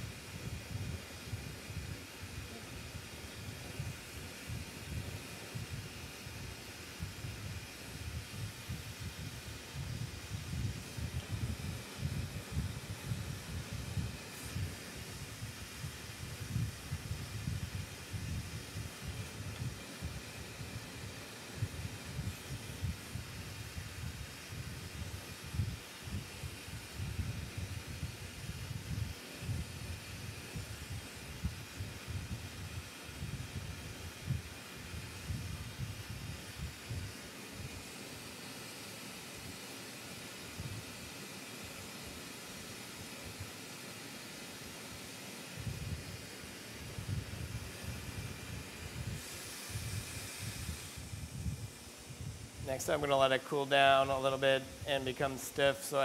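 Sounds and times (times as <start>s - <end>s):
torch flame hissing and rumbling: 0.0s - 56.0s.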